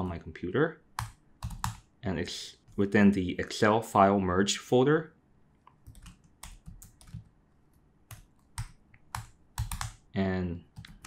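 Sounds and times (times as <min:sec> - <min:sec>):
computer keyboard typing: 0:01.0 - 0:01.9, 0:05.8 - 0:07.4, 0:08.1 - 0:10.0, 0:10.7 - 0:11.0.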